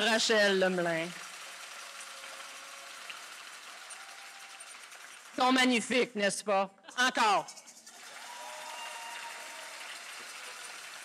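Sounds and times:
audience applause: 0:00.0 - 0:05.8, 0:07.9 - 0:11.0.

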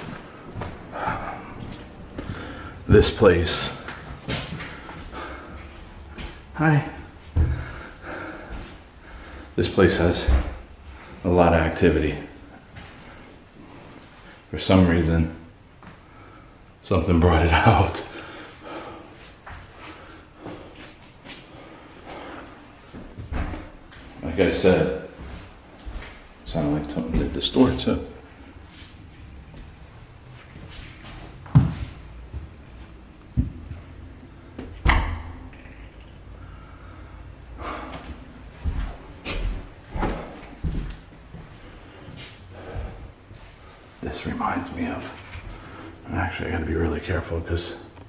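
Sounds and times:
stall door banging: 0:34.8 - 0:35.5.

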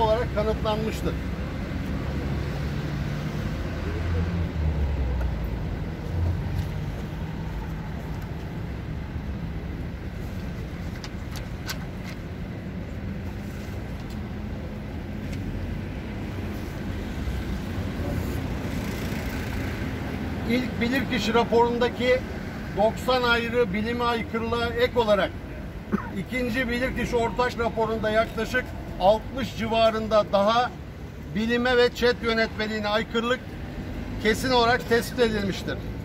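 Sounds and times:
passing vehicles engine rumble: 0:00.0 - 0:36.0.

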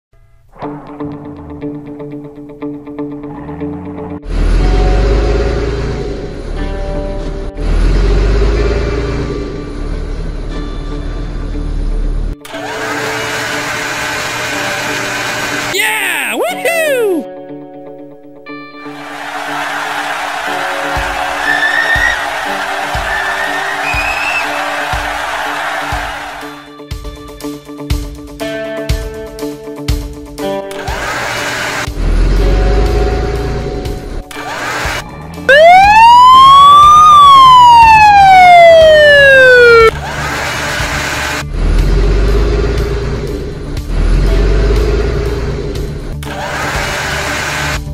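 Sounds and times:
swooping whistle-like glides: 0:21.4 - 0:24.6, 0:35.5 - 0:40.0.

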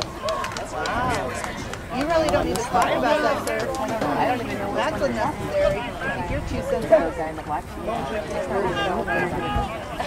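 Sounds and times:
spectators talking indistinctly: 0:00.0 - 0:10.0.

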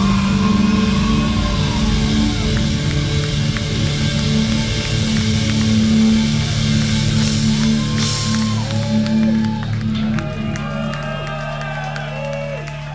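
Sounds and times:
electric guitars and bass: 0:00.0 - 0:12.9.

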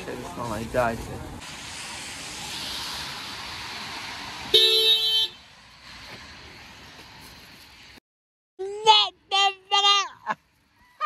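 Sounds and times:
steady outdoor hiss: 0:00.0 - 0:08.0
car horn honk: 0:04.5 - 0:05.4.

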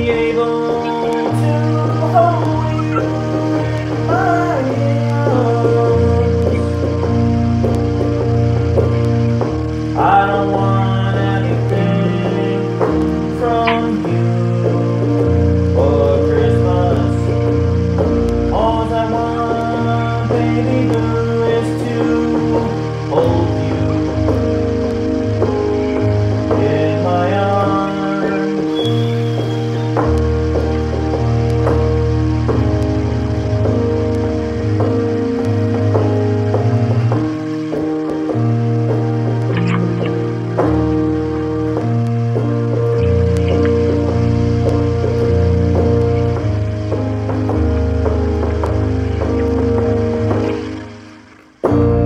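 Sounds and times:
electronic keyboard chords: 0:00.0 - 0:52.0
sustained bass line: 0:00.0 - 0:52.0.

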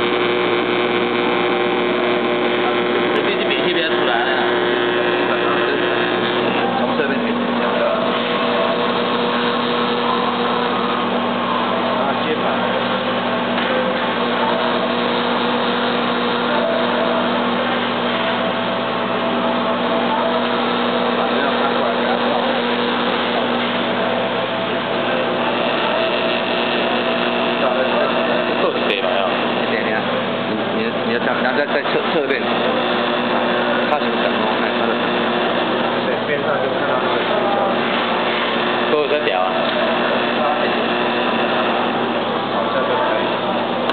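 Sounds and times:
faint voices: 0:00.0 - 0:43.9
machine hum with pitched tones: 0:00.0 - 0:43.9.

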